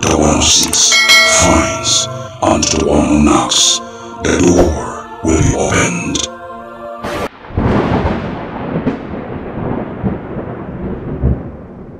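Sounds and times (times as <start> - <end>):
thunder crack: 7.1 - 11.9
rolling thunder rumble: 7.3 - 11.9.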